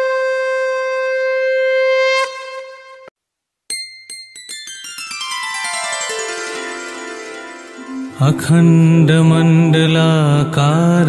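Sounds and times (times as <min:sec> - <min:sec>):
conch shell blown in long note: 0:00.0 - 0:03.1.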